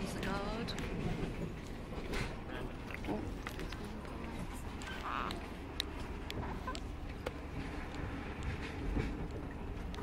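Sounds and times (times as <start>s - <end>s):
train rumble: 0.0s - 10.0s.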